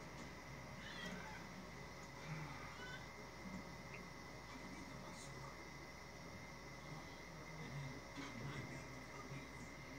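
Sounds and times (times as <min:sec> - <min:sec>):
steady high whine: 0:00.0 - 0:09.9
faint animal calls: 0:00.7 - 0:01.6, 0:02.2 - 0:03.2.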